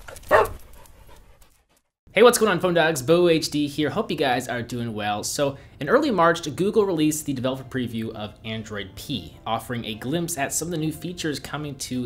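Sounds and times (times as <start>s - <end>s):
dog bark: 0.3s - 0.6s.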